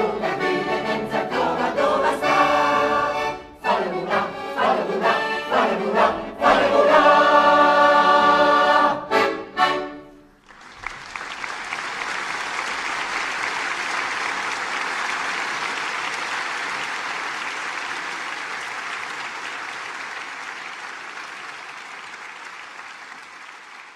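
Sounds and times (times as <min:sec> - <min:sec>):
audience applauding: 0:10.4 - 0:23.9.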